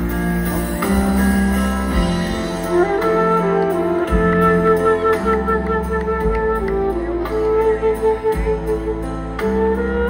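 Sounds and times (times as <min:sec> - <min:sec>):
live rock band music: 0:00.0 - 0:10.0.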